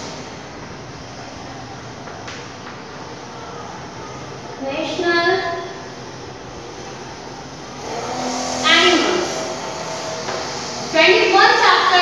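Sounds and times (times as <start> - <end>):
vehicle passing outside: 6.6 - 12.0.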